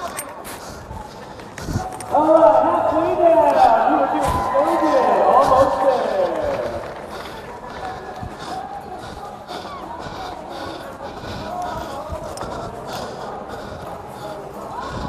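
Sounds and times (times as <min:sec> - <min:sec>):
distant indistinct voices: 0:00.0 - 0:15.0.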